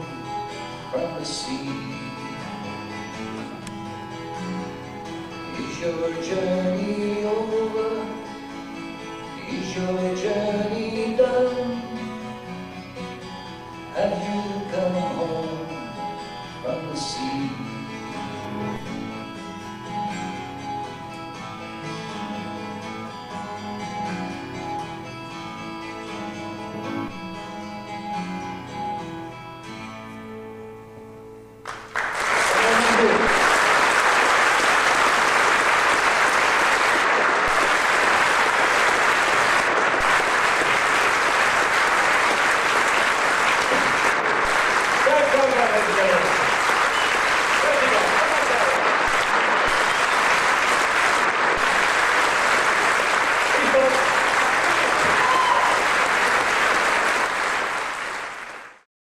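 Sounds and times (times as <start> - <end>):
acoustic guitar notes: 0.0 - 31.6
audience applauding: 31.6 - 58.9.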